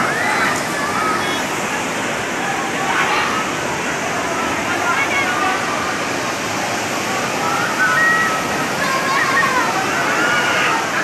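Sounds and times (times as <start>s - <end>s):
floodwater rushing: 0.0s - 11.0s.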